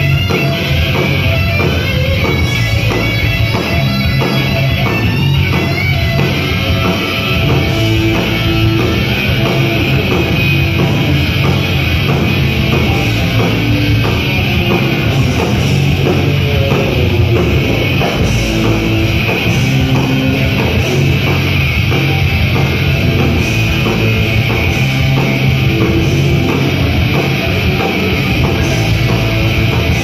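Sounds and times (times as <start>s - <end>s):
bass guitar: 0.0s - 30.0s
distorted electric guitars: 0.0s - 30.0s
drum kit: 0.0s - 30.0s
thrash band playing live: 0.0s - 30.0s.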